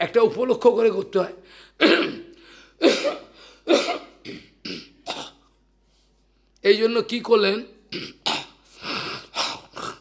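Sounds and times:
man coughing: 1.8 - 5.6, 7.9 - 10.0.

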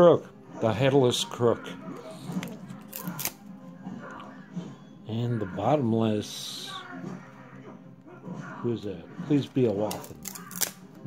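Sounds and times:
faint card handling: 2.0 - 3.5, 9.5 - 10.9
trading cards snapping apart: 2.3 - 3.4, 9.7 - 11.0.

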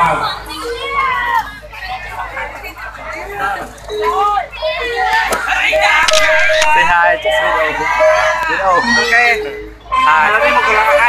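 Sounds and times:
crowd chatter: 0.0 - 11.0
people talking and calling out: 0.0 - 11.0.

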